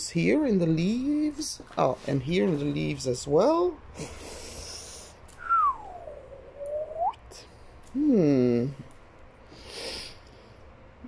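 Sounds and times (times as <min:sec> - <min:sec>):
sliding whistled note: 0:05.4 - 0:07.2.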